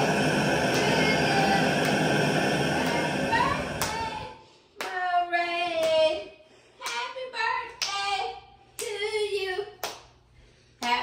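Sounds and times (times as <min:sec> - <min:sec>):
girl singing: 0:02.8 - 0:09.8
hands clapping: 0:03.8 - 0:04.1, 0:04.8 - 0:05.0, 0:05.8 - 0:06.0, 0:06.8 - 0:07.1, 0:09.8 - 0:10.2, 0:10.8 - 0:11.0.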